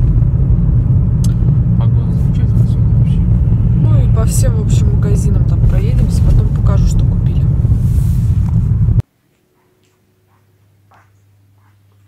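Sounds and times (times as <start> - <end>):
car cabin rumble: 0.0 - 9.0.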